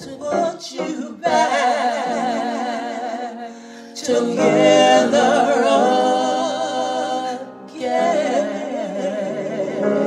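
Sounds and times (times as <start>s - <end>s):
women singing gospel: 0.0s - 10.0s.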